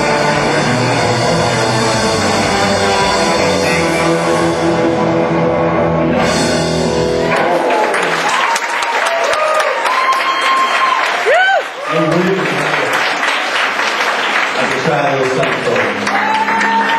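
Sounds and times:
live rock band: 0:00.0 - 0:08.5
audience applause and cheering: 0:00.0 - 0:16.9.

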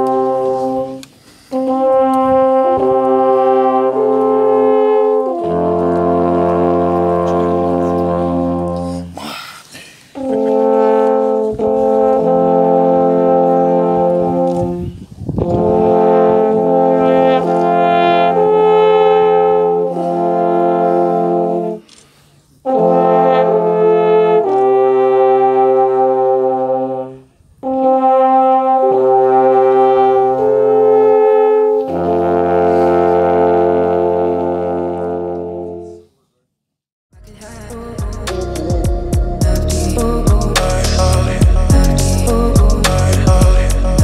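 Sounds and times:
alphorns playing held chords: 0:00.0 - 0:09.2.

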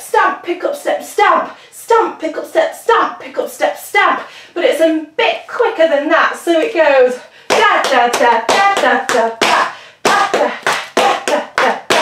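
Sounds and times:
tap shoes on hard floor: 0:07.5 - 0:12.0.

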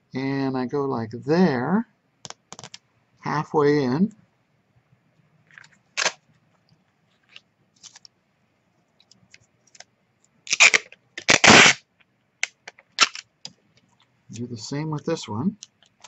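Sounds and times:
tape crinkling: 0:05.5 - 0:08.1, 0:09.0 - 0:11.8, 0:12.4 - 0:14.1
tape ripping off dispenser: 0:06.0 - 0:06.2, 0:10.5 - 0:11.8, 0:12.4 - 0:13.3.

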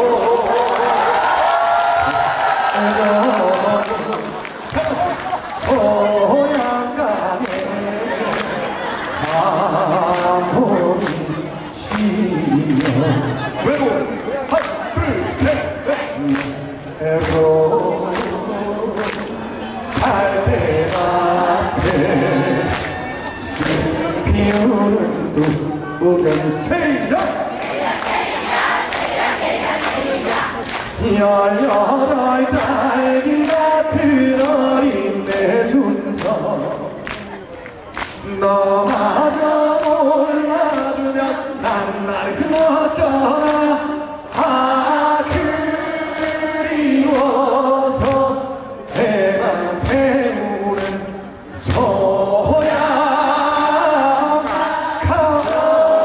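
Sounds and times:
man singing into a microphone: 0:00.0 - 0:27.5, 0:30.9 - 0:56.0
voices chanting in unison: 0:27.3 - 0:30.9.

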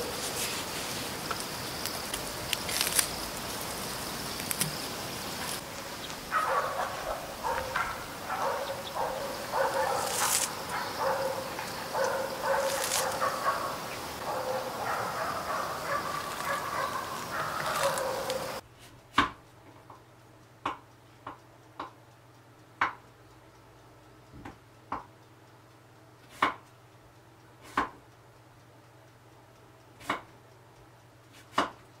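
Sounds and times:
animal calling: 0:00.0 - 0:18.6
sharp rustles: 0:09.7 - 0:10.7, 0:12.1 - 0:13.6, 0:16.1 - 0:18.6.

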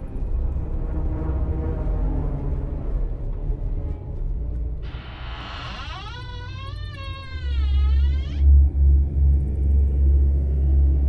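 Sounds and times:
deep rumble: 0:00.0 - 0:11.0.

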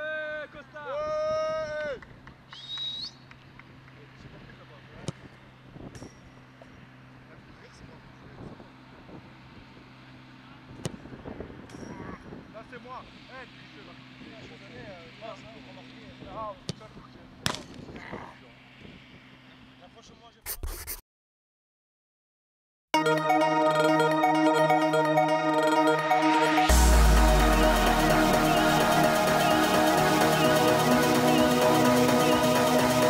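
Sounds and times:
high-pitched rising chirp: 0:23.0 - 0:33.0.

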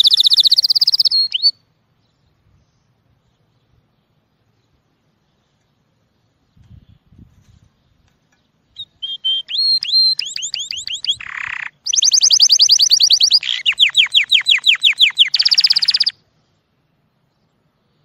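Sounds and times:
canary singing trills: 0:00.0 - 0:01.7, 0:07.9 - 0:16.2.

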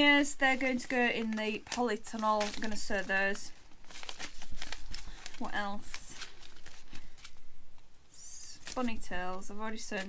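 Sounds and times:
paper packets rustling: 0:00.0 - 0:07.9, 0:08.6 - 0:10.0.

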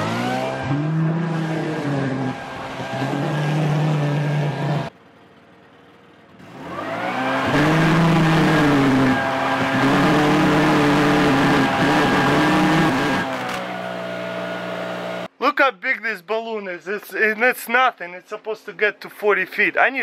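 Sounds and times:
leaf blower running: 0:06.4 - 0:15.3.

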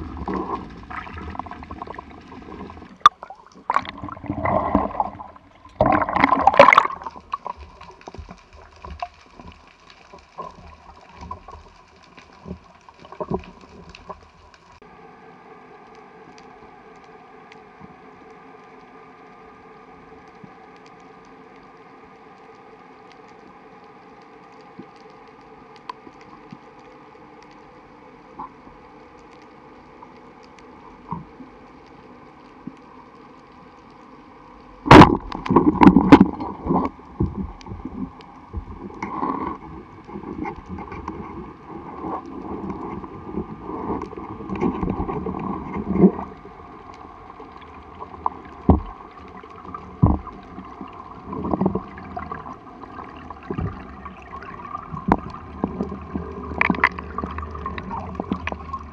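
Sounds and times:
underwater sea noise: 0:00.0 - 0:58.9
faint clicks: 0:00.1 - 0:14.9, 0:15.7 - 0:58.9.

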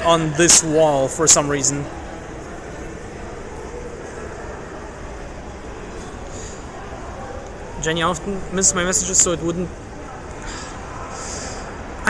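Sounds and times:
indoor hall background noise: 0:00.0 - 0:12.0.

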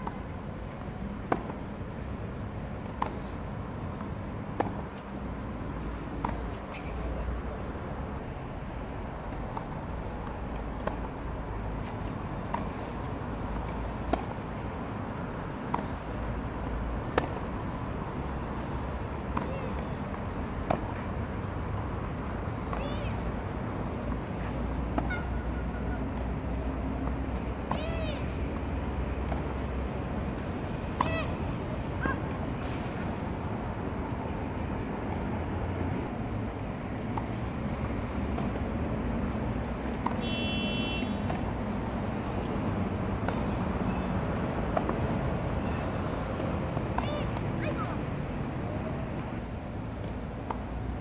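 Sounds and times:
tennis ball struck with sharp pops: 0:00.8 - 0:01.7, 0:02.8 - 0:05.1, 0:06.2 - 0:06.9, 0:09.5 - 0:11.2, 0:11.8 - 0:14.6, 0:15.6 - 0:16.0, 0:16.6 - 0:17.5, 0:19.3 - 0:21.2, 0:26.1 - 0:29.7, 0:30.9 - 0:31.4, 0:39.8 - 0:41.5, 0:43.2 - 0:43.5, 0:44.6 - 0:45.2.

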